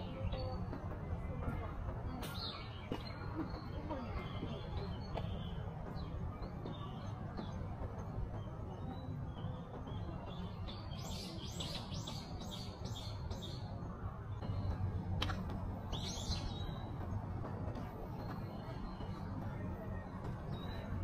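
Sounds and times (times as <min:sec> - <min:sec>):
songbird singing: 0:00.0 - 0:17.4, 0:18.0 - 0:21.0
low outdoor rumble: 0:00.0 - 0:21.0.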